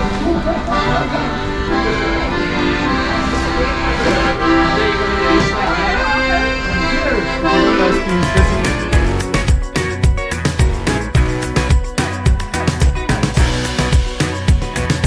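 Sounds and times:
instrumental background music: 0:00.0 - 0:15.0.

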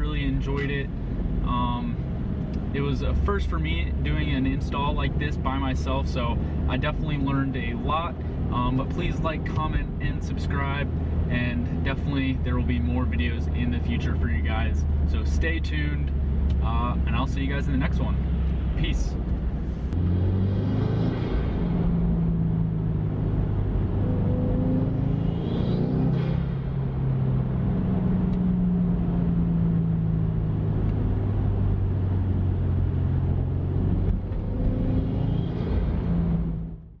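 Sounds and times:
car engine and road noise: 0:00.0 - 0:37.0.

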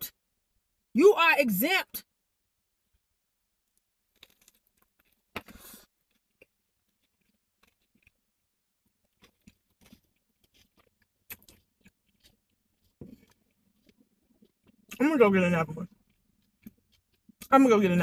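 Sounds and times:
crunching while chewing: 0:03.7 - 0:15.1, 0:15.8 - 0:17.5.

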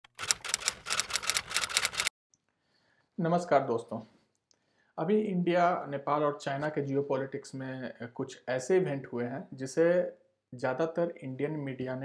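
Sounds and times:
typewriter keystrokes: 0:00.0 - 0:02.1.

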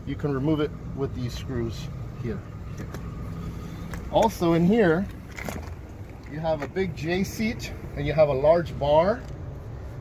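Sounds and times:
vehicle idling: 0:00.0 - 0:10.0.

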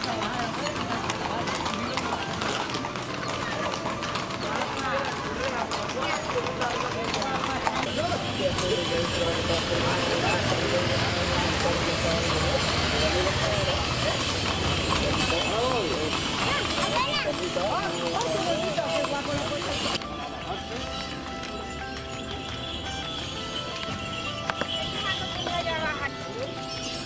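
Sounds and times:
crowd chatter: 0:00.0 - 0:27.0
hooves clip-clopping on pavement: 0:00.0 - 0:27.0
music: 0:00.0 - 0:27.0.

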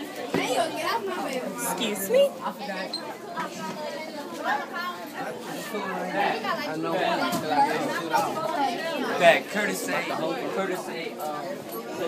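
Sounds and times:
many students talking: 0:00.0 - 0:12.0.

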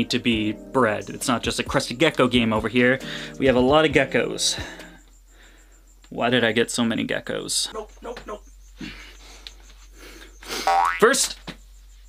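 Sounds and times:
cartoon boing sound effect: 0:10.7 - 0:11.0.

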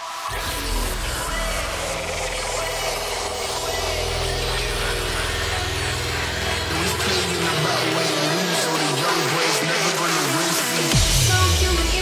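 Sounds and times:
buzzing pulsing synth drone: 0:00.3 - 0:09.4.

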